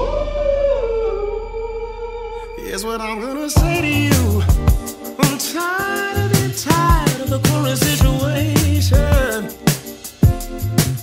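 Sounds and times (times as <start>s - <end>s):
soul-rock music: 3.2s - 11.0s.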